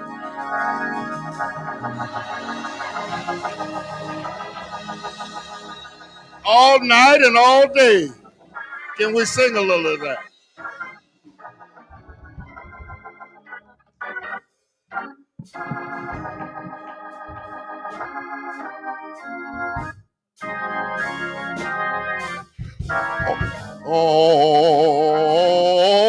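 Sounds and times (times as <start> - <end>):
organ playing held chords: 0.0 - 26.0.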